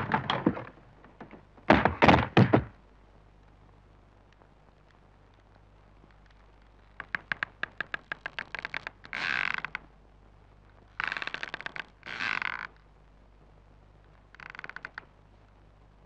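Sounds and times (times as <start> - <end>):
wooden door creaking on hinges: 0.0 - 2.7.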